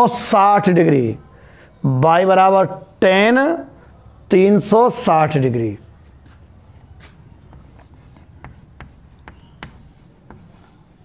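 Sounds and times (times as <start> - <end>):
chalk tapping and scratching: 7.0 - 11.0.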